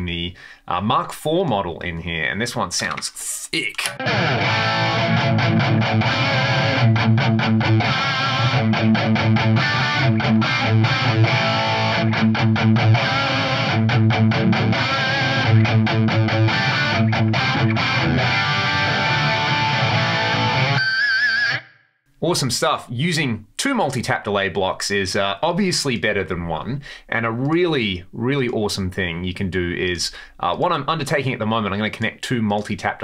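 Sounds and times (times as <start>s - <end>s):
distorted electric guitar riff: 3.5s - 21.7s.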